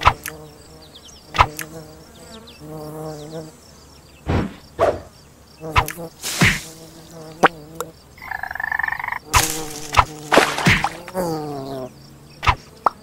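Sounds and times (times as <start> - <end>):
sharp snaps and whacks: 0.0 - 0.4, 1.3 - 1.8, 4.2 - 5.1, 5.8 - 6.7, 9.3 - 11.2, 12.4 - 13.0
cartoon insect buzz: 0.0 - 3.6, 4.2 - 13.0
cartoon frog croaking: 8.2 - 11.2.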